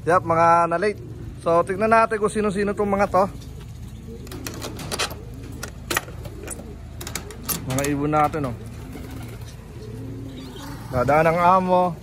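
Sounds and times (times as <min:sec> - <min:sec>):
steady low hum: 0:00.0 - 0:12.0
sharp clicks and light rattles: 0:04.2 - 0:08.4.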